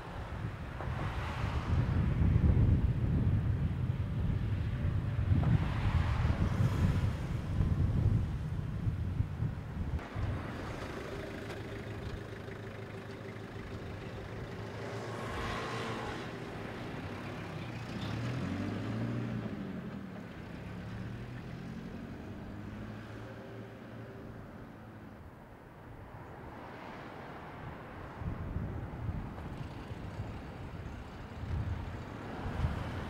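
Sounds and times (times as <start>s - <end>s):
car passing with low rumble: 0.1s - 33.0s
truck engine running: 10.0s - 15.2s.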